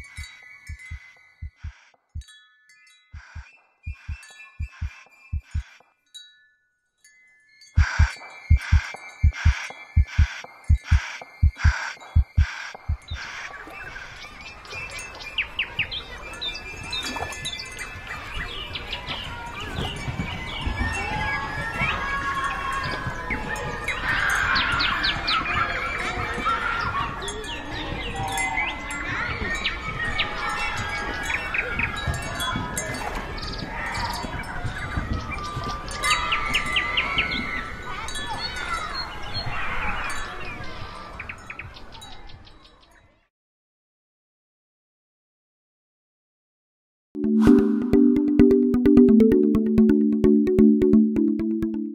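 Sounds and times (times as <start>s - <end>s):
heartbeat-like thumps: 0.8s - 1.7s, 3.3s - 5.7s, 7.8s - 13.2s
chime-like ringing tones: 47.2s - 51.9s.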